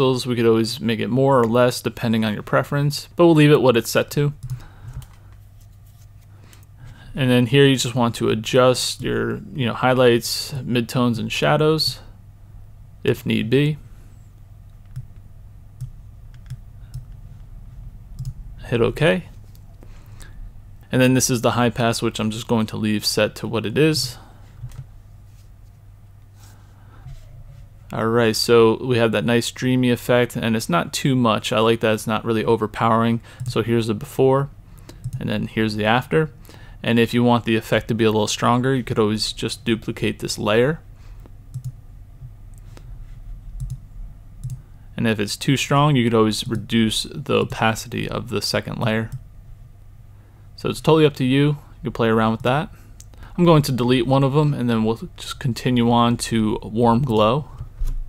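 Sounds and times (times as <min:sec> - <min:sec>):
faint low hum: 0:00.0 - 0:58.0
computer mouse clicking: 0:15.8 - 0:17.2, 0:18.2 - 0:18.4, 0:41.2 - 0:41.8, 0:43.6 - 0:43.8, 0:44.4 - 0:44.6
computer mouse clicks: 0:41.2 - 0:41.8, 0:43.6 - 0:43.8, 0:44.4 - 0:44.6.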